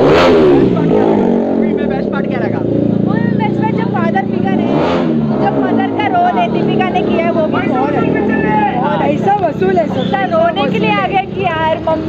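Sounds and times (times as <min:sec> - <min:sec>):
low vehicle engine hum: 0:00.0 - 0:12.0
voices talking: 0:00.0 - 0:12.0.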